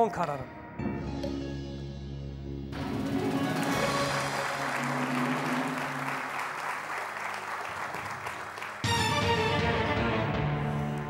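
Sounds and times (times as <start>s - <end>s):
game show music: 0.0s - 11.0s
studio audience applause: 3.0s - 9.6s.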